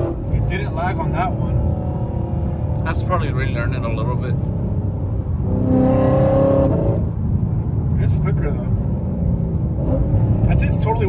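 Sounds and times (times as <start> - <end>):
car engine from inside cabin: 0.0 - 11.0
low road drone: 0.0 - 11.0.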